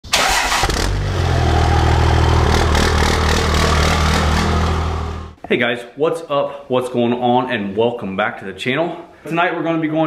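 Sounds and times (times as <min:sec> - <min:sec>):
engine starting and running: 0:00.0 - 0:05.4.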